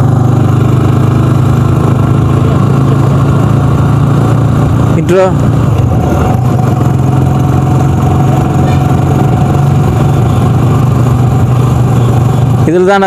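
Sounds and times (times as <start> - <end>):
road noise: 0.0 - 13.0
vehicle engine drone: 0.0 - 13.0.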